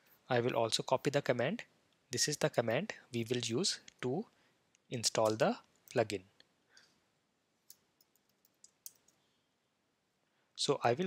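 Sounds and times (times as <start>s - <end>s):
computer mouse clicks: 7.7s - 9.2s.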